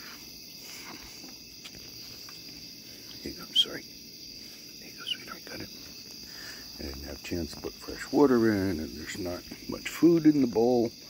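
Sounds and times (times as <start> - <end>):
night insects chorus: 0.0 - 11.0.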